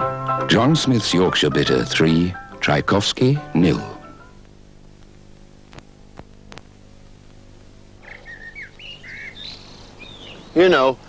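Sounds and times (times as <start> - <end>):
faint steady low hum: 0.0 - 11.0
small birds chirping: 8.0 - 11.0.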